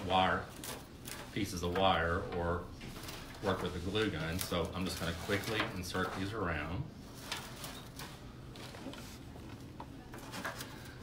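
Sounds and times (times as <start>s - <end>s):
dry stems rustling and crackling: 0.0s - 9.2s.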